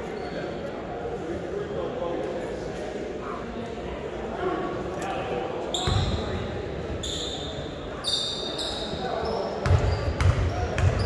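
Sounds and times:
voices in a hall: 0.0 - 11.0
sneakers squeaking on hardwood: 5.7 - 6.4.

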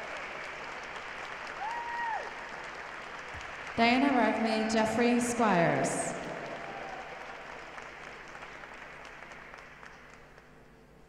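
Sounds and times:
audience applause: 0.0 - 4.3, 6.0 - 10.6.

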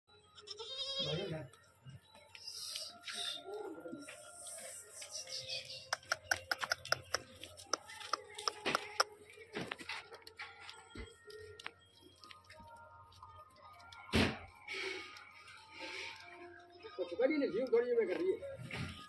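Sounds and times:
goat bleating: 0.4 - 1.3
sharp clicks: 5.8 - 9.2.

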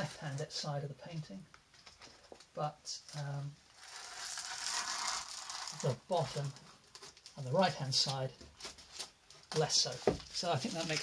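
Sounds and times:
tape peeling off paper: 3.1 - 7.4.

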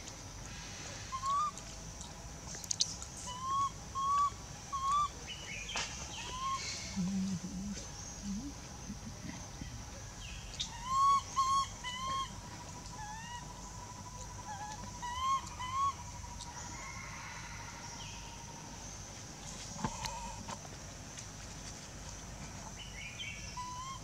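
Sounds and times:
infant monkey whistle-like calls: 1.0 - 1.6, 2.7 - 8.5, 10.5 - 16.4, 23.5 - 24.0
high insect drone: 15.9 - 20.9.

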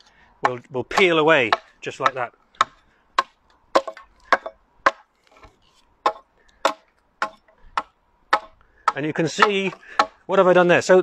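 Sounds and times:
axe chopping wood: 0.4 - 10.2.

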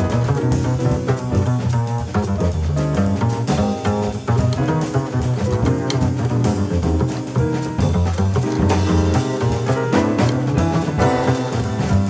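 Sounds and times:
acoustic jazz group playing: 0.0 - 12.0
plucked double bass: 0.0 - 12.0.

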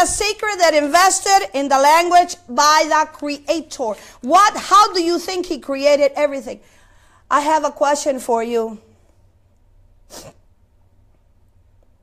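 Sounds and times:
faint low hum: 0.0 - 12.0
woman taking a sharp breath: 6.6 - 7.3.

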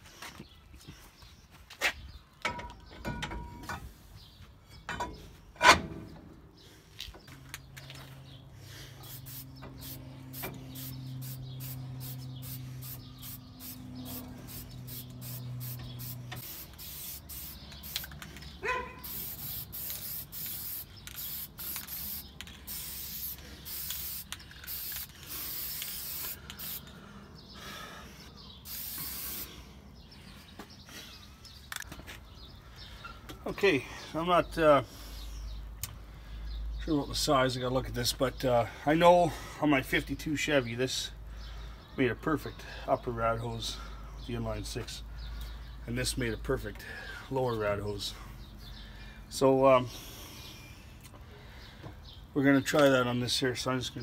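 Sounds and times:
spray paint hissing in bursts: 8.8 - 26.9, 28.2 - 29.6.

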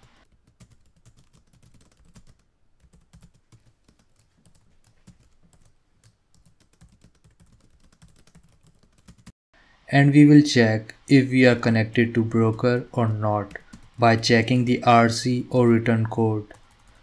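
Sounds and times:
typing on computer keyboard: 0.4 - 9.3.

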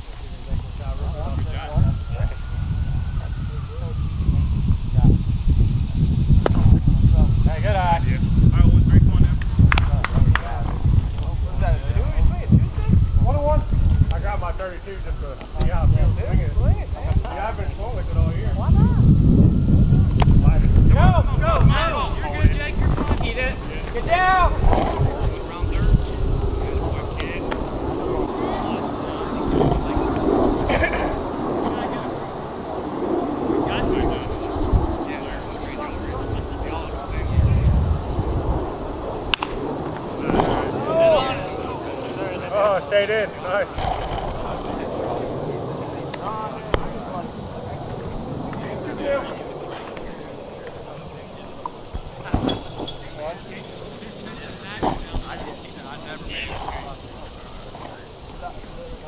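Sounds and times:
steady low rumble: 0.0 - 58.7
faint distant voices: 0.0 - 59.0
distant players shouting: 38.0 - 58.0.

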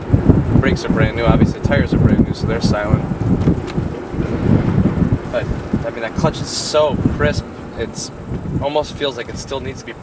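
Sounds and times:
car driving rumble: 0.0 - 10.0
wind buffeting microphone: 0.0 - 10.0.

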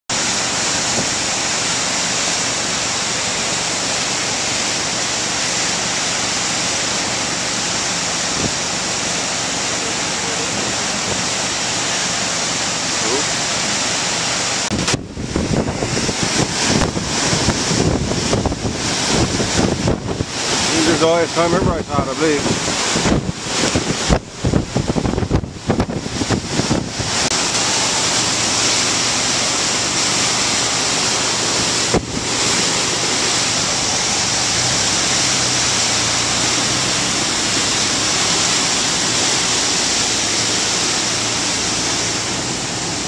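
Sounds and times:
river rushing through rapids: 0.1 - 43.0
wind buffeting microphone: 14.7 - 29.9.

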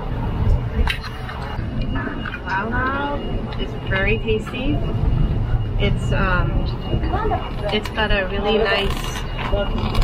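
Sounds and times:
traffic rumble: 0.0 - 10.0
wind: 0.0 - 10.0.

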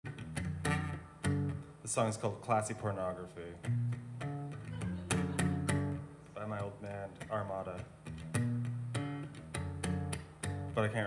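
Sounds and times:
acoustic guitar strummed: 0.1 - 1.8, 3.6 - 11.0
man speaking: 1.8 - 3.6, 6.3 - 7.9, 10.8 - 11.0.

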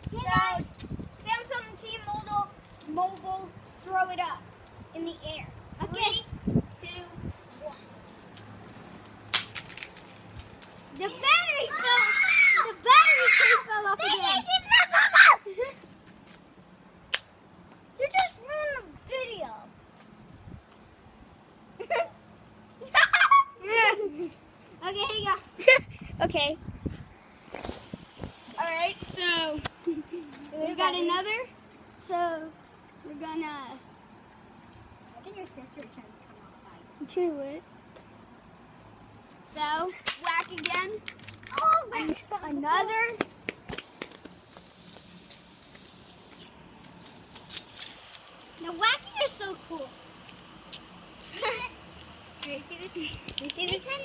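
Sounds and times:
light rustles: 25.6 - 28.6.

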